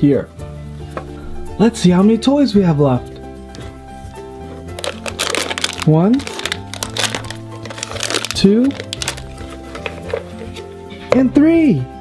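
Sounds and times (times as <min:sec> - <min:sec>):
background music: 0:00.0 - 0:12.0
foil packaging crinkling: 0:04.7 - 0:10.6.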